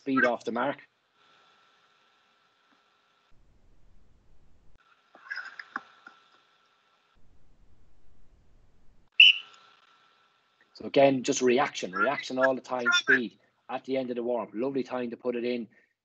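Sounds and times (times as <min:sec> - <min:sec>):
loud shrill whistle-like note: 0:09.1 - 0:09.5
faint thin whistle-like tone: 0:09.1 - 0:09.7.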